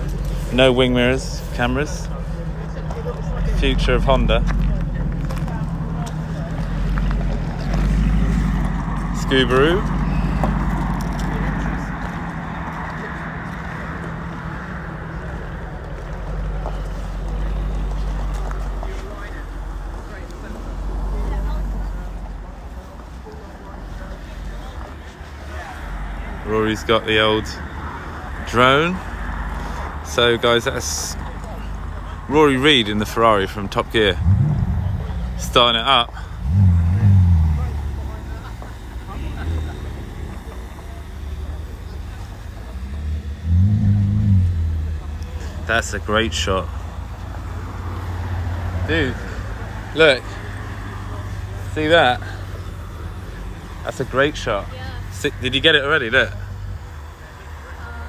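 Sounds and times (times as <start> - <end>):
car engine idling: 0.0 - 58.0
distant voices: 0.0 - 58.0.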